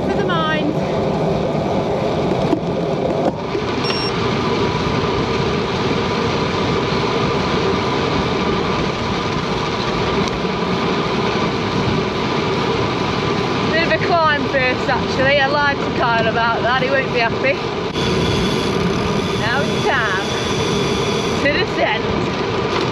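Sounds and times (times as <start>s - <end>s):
person talking: 0.0s - 0.9s, 13.7s - 17.6s, 19.4s - 20.4s, 21.4s - 22.2s
bike tyres on tarmac: 0.0s - 22.9s
faint steady hum: 16.0s - 21.9s.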